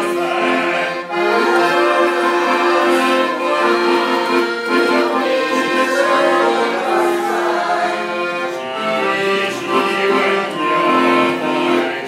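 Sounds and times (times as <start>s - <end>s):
man singing: 0.0s - 12.0s
piano accordion slow melody: 0.0s - 12.0s.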